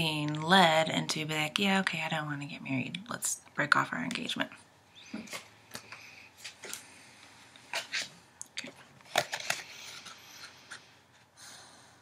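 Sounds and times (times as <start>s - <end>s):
paper rustling: 9.0s - 10.9s.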